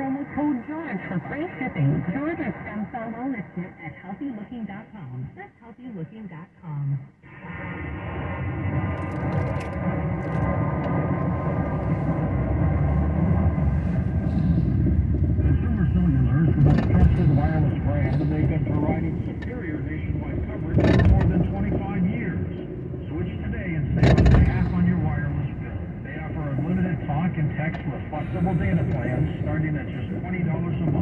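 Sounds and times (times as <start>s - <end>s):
talk from car radio: 0.0s - 7.1s, 13.8s - 31.0s
road and engine noise: 7.3s - 31.0s.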